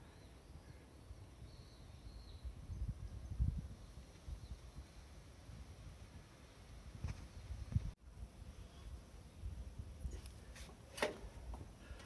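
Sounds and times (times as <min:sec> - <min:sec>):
faint bird chirps: 0:00.0 - 0:05.1.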